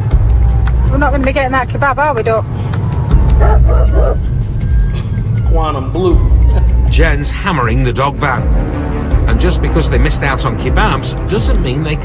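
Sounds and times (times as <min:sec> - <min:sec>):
background music: 0:00.0 - 0:12.0
dog barking: 0:03.4 - 0:04.2.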